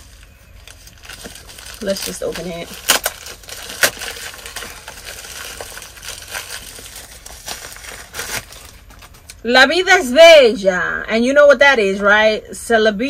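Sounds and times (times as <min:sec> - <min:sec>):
plastic bag crinkling: 0:00.0 - 0:09.4
plastic bag tearing: 0:00.6 - 0:09.4.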